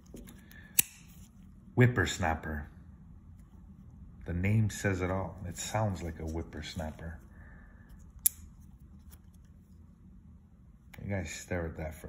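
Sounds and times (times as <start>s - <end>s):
faint knife handling clicks: 0.1s - 1.3s.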